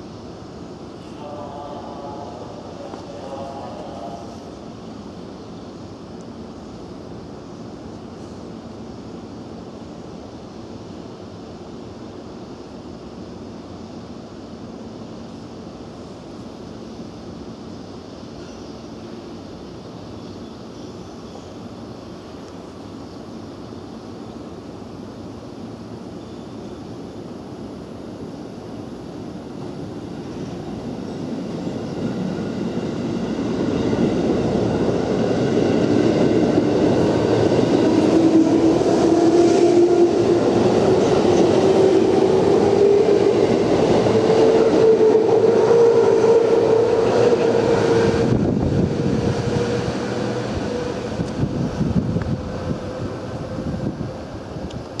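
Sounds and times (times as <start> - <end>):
train wheels rumbling on rails: 28.8 - 55.0.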